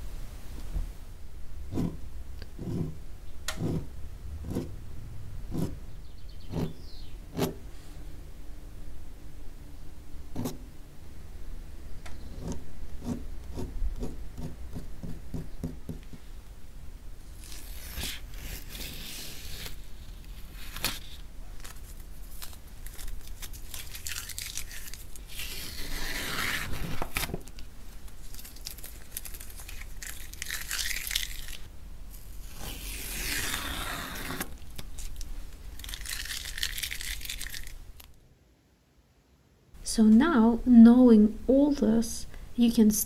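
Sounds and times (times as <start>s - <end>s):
steady low hum: 0.0s - 30.4s
tape crackling as lifted: 17.3s - 38.2s
tape tearing off paper: 17.3s - 38.2s.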